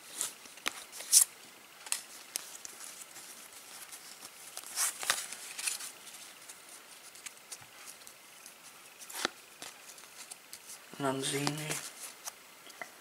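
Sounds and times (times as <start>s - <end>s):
cards rustling and sliding: 0.0s - 12.4s.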